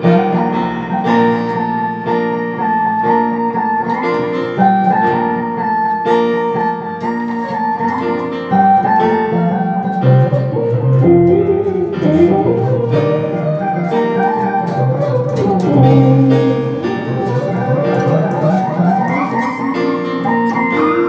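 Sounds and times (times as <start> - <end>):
sustained keyboard chords: 0.0 - 21.0
electric bass solo with harmonizer: 7.4 - 21.0.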